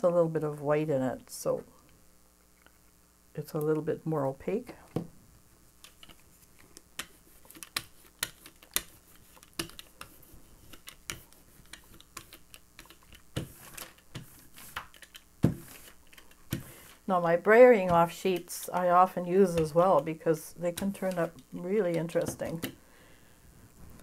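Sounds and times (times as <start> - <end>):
brayer rolling paint crackling: 5.7 - 22.8.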